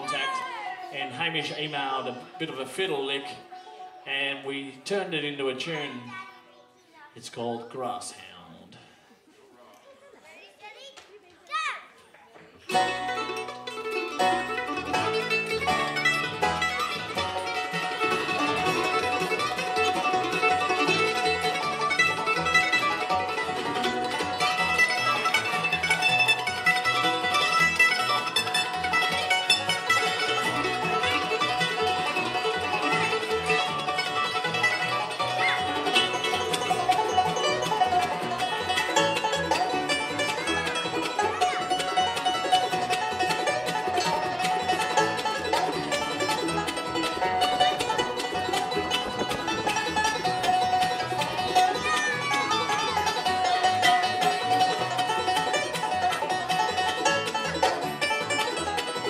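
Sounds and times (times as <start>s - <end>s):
upright bass: 0.0s - 3.4s, 12.7s - 59.0s
acoustic guitar: 0.0s - 6.4s, 12.6s - 59.0s
mandolin: 0.0s - 9.3s, 11.6s - 59.0s
banjo: 0.0s - 10.5s, 11.6s - 59.0s.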